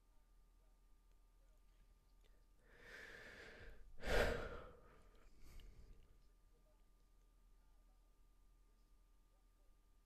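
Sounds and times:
person sighing: 2.8s - 4.8s.

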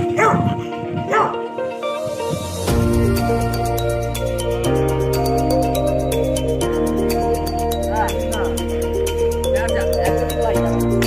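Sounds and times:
dog barking: 0.0s - 1.5s
background music with held notes: 0.0s - 11.0s.

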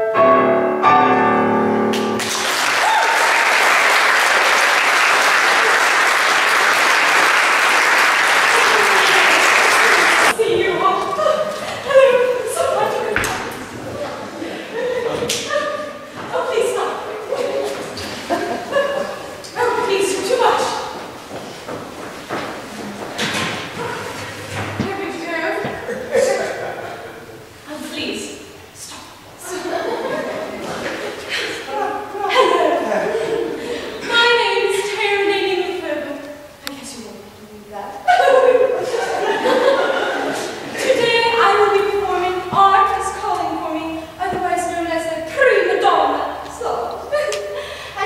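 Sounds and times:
woman laughing: 8.5s - 10.3s, 14.0s - 16.0s, 17.3s - 19.4s, 29.4s - 34.2s, 38.0s - 41.2s, 47.0s - 47.6s.

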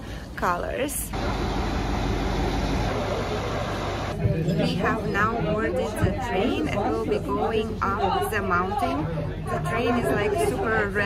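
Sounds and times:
diesel locomotive idling: 1.1s - 4.2s.

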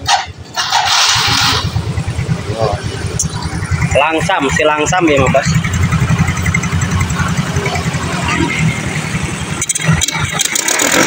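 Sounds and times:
scooter engine starting and idling: 0.0s - 11.0s.

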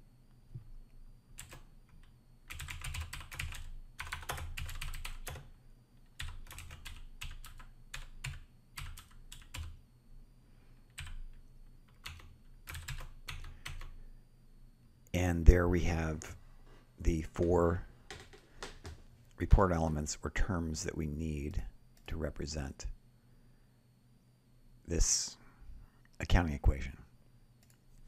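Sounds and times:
typing on computer keyboard: 1.4s - 5.5s, 6.1s - 9.8s, 10.9s - 14.0s, 18.1s - 19.0s.

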